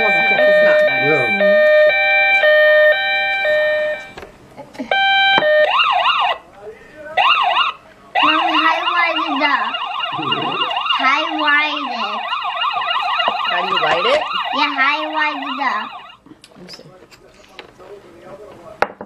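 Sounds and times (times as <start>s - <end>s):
warbling toy siren: 0.0s - 4.1s, 7.2s - 16.2s
stepped electronic beeping tones: 0.0s - 4.2s, 10.1s - 10.8s.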